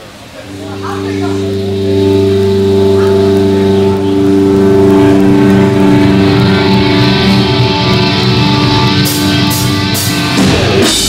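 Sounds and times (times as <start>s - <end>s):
heavy metal band droning chord: 0.3s - 11.0s
pulsing low note: 0.4s - 10.4s.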